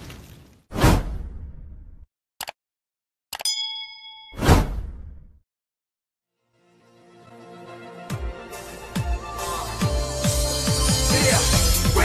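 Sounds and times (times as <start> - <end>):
bright bell-like ding: 3.4 - 4.4.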